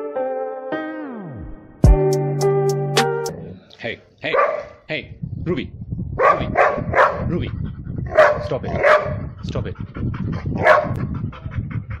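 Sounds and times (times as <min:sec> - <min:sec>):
dog barking: 0:04.3 - 0:04.8, 0:06.2 - 0:07.3, 0:08.1 - 0:09.2, 0:10.6 - 0:11.0.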